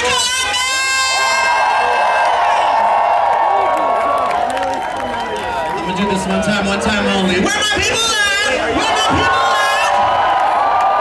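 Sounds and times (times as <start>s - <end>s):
crowd screaming and cheering: 0.0s - 11.0s.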